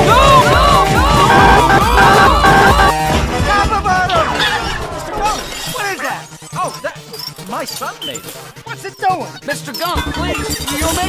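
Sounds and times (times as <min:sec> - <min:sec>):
pitched chirps: 0:01.2 - 0:02.9.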